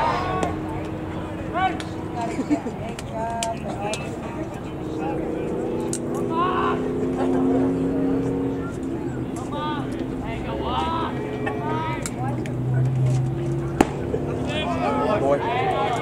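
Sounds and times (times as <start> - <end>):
engine drone: 0.0 - 16.0
voices calling: 0.0 - 16.0.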